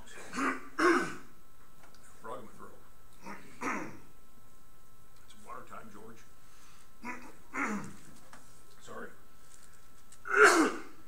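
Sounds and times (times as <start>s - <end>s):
man clearing throat: 0.0s - 1.3s, 3.2s - 4.1s, 7.0s - 8.0s, 10.3s - 11.0s.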